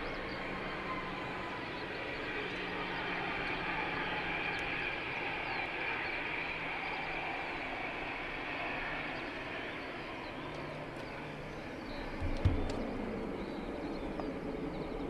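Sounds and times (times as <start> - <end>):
jet engines rushing: 0.0 - 15.0.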